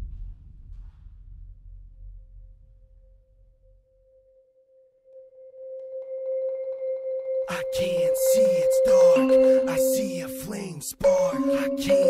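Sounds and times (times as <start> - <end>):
marimba roll: 5.9 - 12.0.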